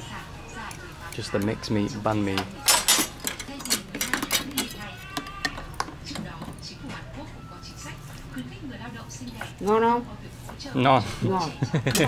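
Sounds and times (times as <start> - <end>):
kitchen utensils clattering: 1.1 - 6.6, 11.6 - 12.0.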